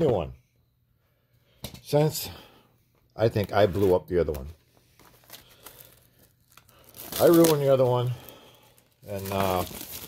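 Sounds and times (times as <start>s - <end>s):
plastic wrap crinkling and tearing: 5.0s - 10.0s.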